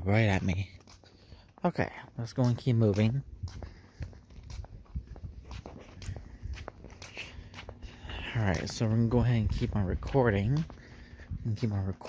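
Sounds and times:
footsteps on concrete: 0.0s - 12.0s.

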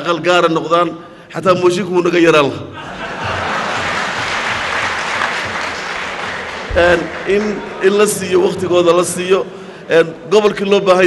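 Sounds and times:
man talking: 0.0s - 2.7s, 6.7s - 11.0s
audience applauding: 2.9s - 8.6s.

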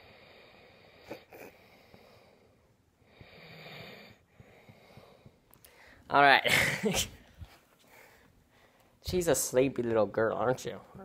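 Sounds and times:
dog breathing: 0.0s - 6.0s.

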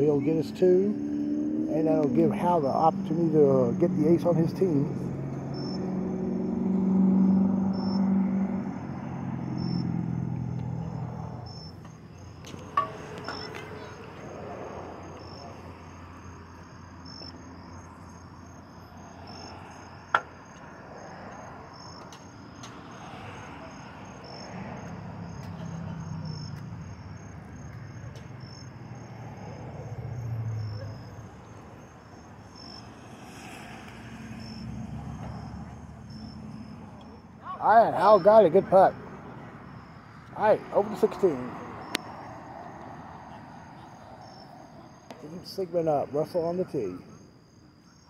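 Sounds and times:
crickets chirping: 0.0s - 48.0s.

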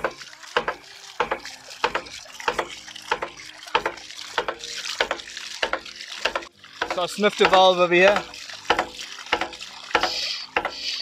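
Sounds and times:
water gushing and splashing: 0.0s - 11.0s.

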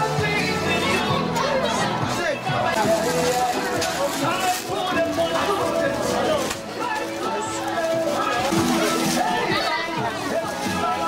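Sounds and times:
adults and children talking: 0.0s - 11.0s.

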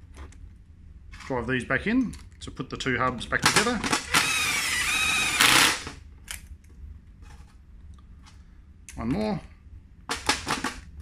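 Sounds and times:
cordless driver motor whine: 4.1s - 5.9s.

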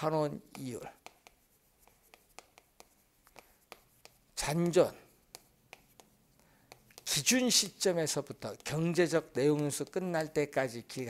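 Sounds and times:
chalk tapping on chalkboard: 0.0s - 11.0s.

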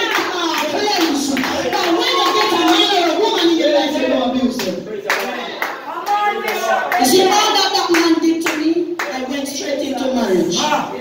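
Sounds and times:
congregation clapping: 0.0s - 9.7s.

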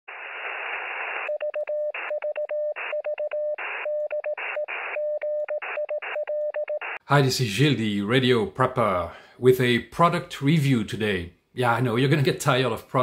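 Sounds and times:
radio static hiss: 0.1s - 1.4s, 3.6s - 5.0s
morse code beeps: 1.3s - 7.0s.

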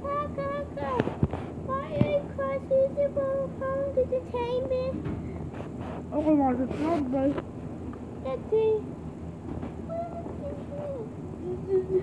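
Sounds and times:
low background rumble: 0.0s - 5.8s.

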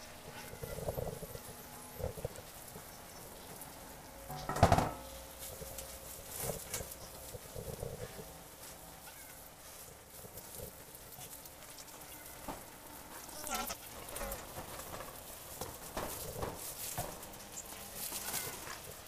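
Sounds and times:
dry leaf strips rustling: 0.0s - 19.0s.

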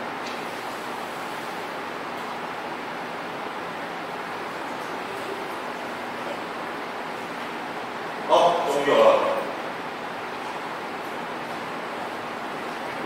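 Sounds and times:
room hiss: 0.0s - 13.0s.

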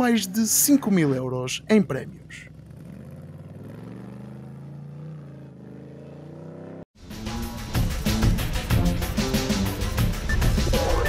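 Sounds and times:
buggy engine running at low revs: 0.0s - 11.0s.

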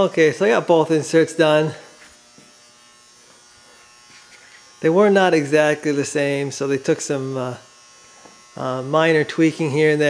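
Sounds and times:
faint electrical buzz with whine: 0.0s - 10.0s.

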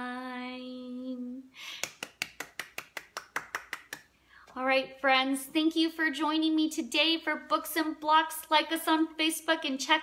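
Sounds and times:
person clapping hands quickly: 1.8s - 4.1s.

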